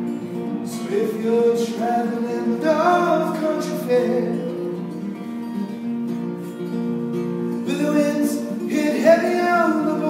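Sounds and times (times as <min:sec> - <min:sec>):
acoustic guitar picked and strummed: 0:00.0 - 0:10.0
man singing: 0:00.4 - 0:05.1, 0:07.6 - 0:10.0.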